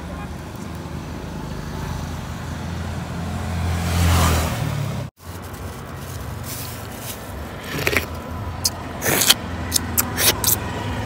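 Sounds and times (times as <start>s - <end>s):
low hum of road traffic: 0.0s - 11.0s.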